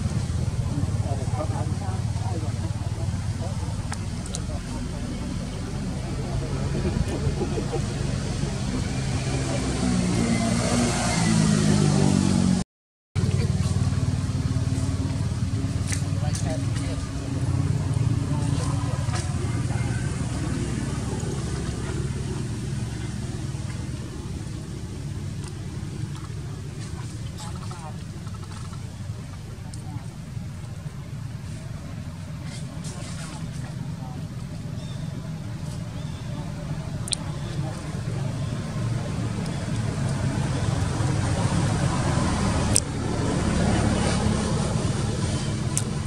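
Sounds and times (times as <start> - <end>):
faint voices: 0.0 - 11.6, 13.2 - 46.0
motor vehicle engine running: 0.0 - 12.6, 13.2 - 46.0.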